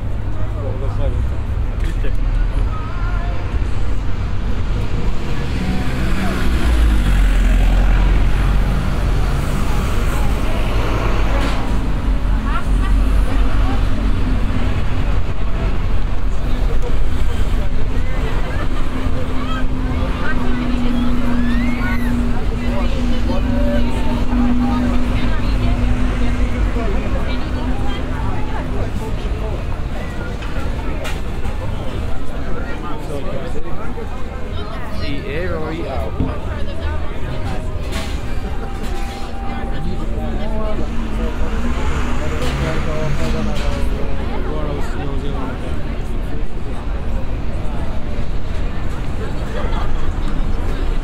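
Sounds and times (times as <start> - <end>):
bus passing: 0.0 - 51.0
people chatting: 0.0 - 51.0
road traffic: 0.0 - 51.0.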